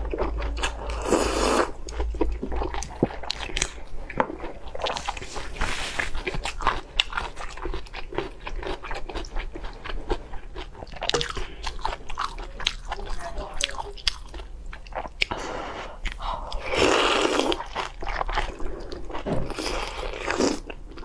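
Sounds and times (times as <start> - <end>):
chewing and biting food: 0.0 - 15.4, 16.0 - 21.0
breathing: 15.3 - 16.6.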